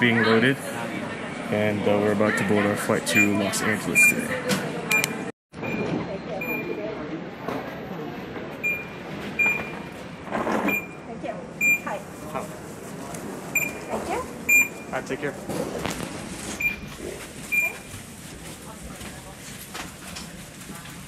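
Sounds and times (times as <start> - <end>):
people chattering: 0.0 - 10.2, 10.9 - 21.0
scanner short high beeps: 4.9 - 6.9, 13.6 - 15.1, 16.6 - 17.9.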